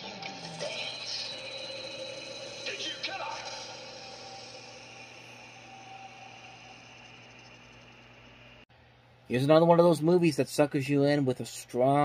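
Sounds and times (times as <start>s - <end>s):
movie trailer soundtrack from tv: 0.0s - 8.3s
low steady hum: 0.0s - 12.0s.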